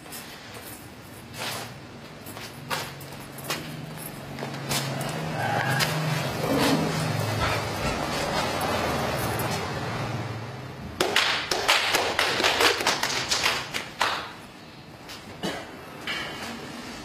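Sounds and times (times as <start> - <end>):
hand claps: 11.0 - 14.5.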